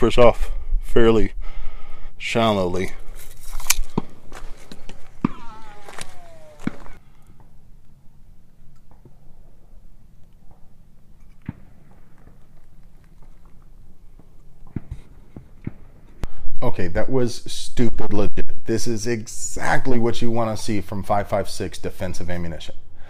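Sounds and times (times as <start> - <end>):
brief falling whir: 4.3 - 7.5.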